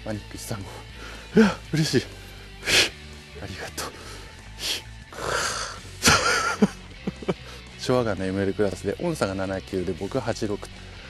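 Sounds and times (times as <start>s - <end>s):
man wheezing laughter: 5.2s - 7.6s.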